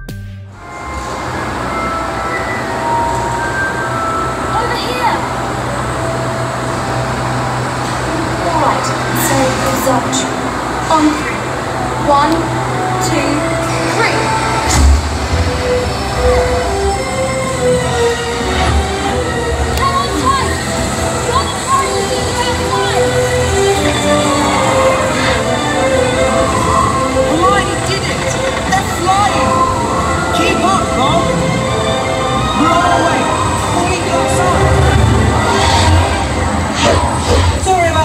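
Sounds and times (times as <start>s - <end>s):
noisy rumble: 0.5s - 38.0s
held musical tones: 0.6s - 37.7s.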